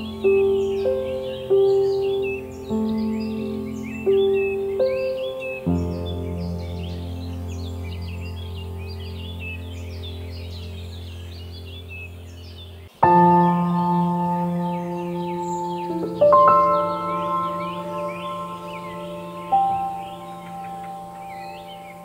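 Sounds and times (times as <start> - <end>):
birdsong chirps: 0.0 - 22.0
soft piano chords: 0.0 - 22.0.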